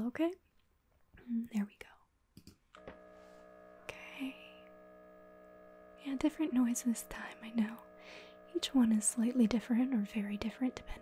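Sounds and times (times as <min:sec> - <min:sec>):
mri scanner buzzing hum: 0:02.7 - 0:11.0.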